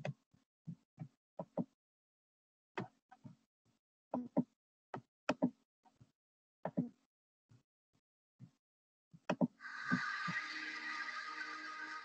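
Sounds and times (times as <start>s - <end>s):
hissing shimmer: 9.6s - 12.0s
steady held tones: 9.6s - 12.0s.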